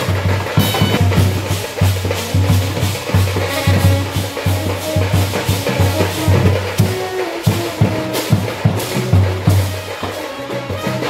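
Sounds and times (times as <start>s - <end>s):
drums and cymbals beating: 0.0s - 11.0s
trumpets and horns melody: 0.0s - 11.0s.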